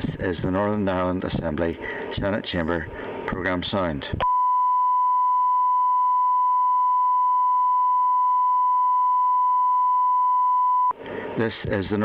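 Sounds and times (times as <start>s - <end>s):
recorded station announcement: 0.1s - 4.3s, 11.4s - 12.0s
steady electronic test tone: 4.2s - 11.0s.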